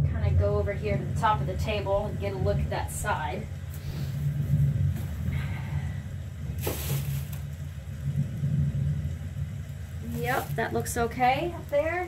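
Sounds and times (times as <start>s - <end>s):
low background hum: 0.0s - 12.0s
rustling hiss: 1.2s - 12.0s.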